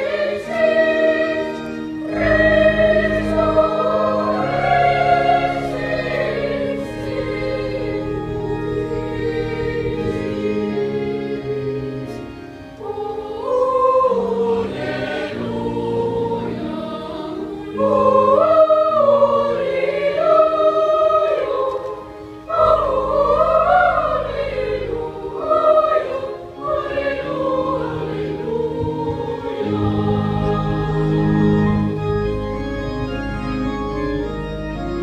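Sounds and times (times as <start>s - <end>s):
boys' choir singing: 0.0s - 31.9s
low organ notes: 0.0s - 35.0s.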